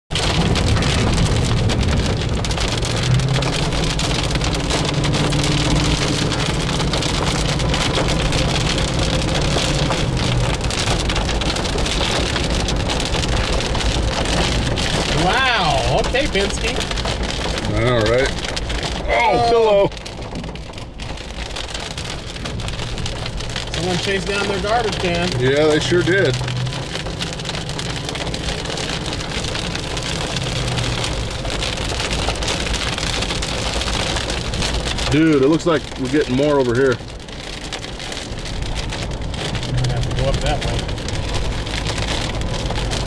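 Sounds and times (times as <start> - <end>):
heavy rain on car: 0.1 - 43.0.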